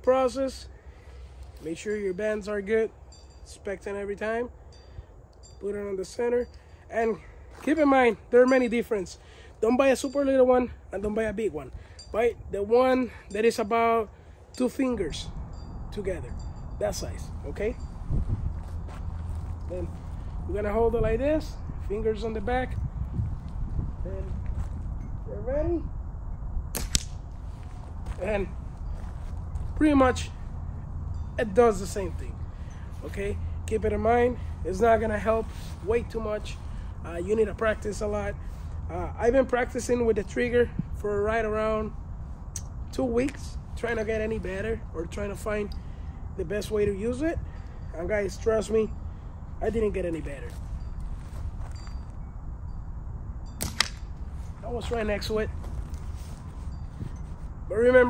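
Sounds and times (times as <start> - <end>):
slingshot rubber bands snapping: 26.8 - 27.2, 53.6 - 54.0
steel ball striking: 53.6 - 54.2.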